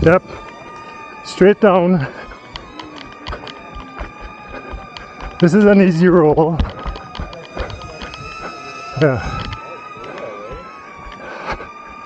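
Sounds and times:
drone propellers whining: 0.0s - 12.0s.

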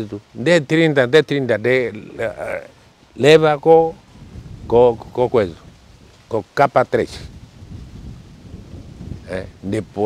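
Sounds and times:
low uneven rumbling: 1.6s - 10.0s.

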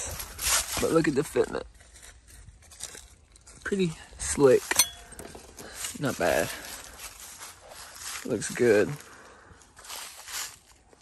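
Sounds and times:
footsteps through dry leaves: 0.0s - 4.7s, 5.4s - 11.0s.

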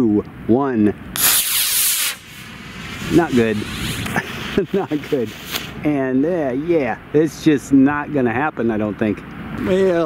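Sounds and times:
rocket motor hissing: 1.2s - 5.9s.

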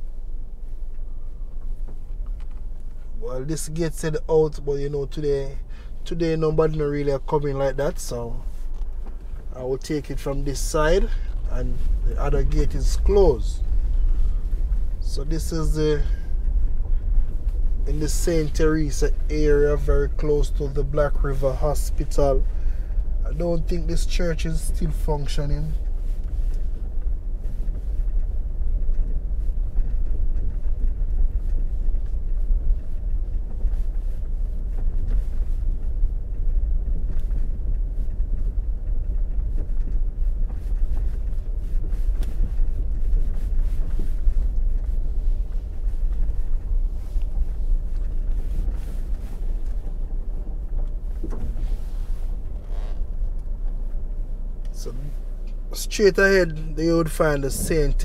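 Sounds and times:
vehicle rumbling on dirt track: 0.0s - 58.0s.

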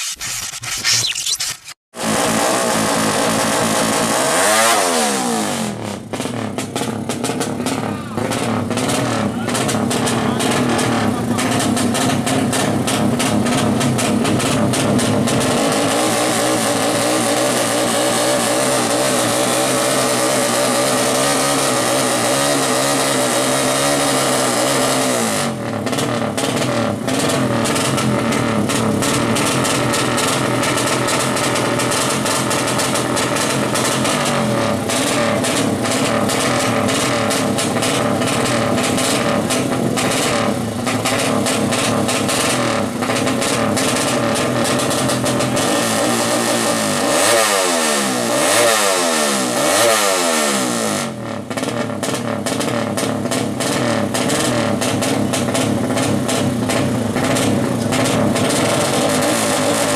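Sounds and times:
motorcycle engine revving: 1.6s - 59.9s.

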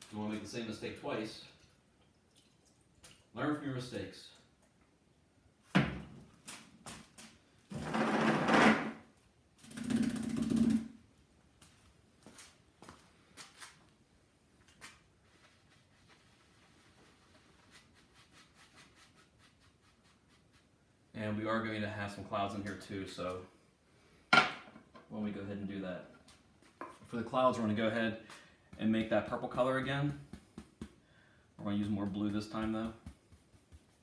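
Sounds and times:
low room hiss: 0.0s - 34.0s
paintbrush rubbing: 15.2s - 20.8s, 31.9s - 34.0s.

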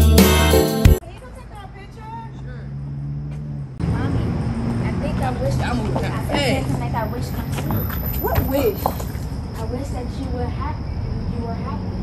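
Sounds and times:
vehicle engine humming: 0.9s - 12.0s.

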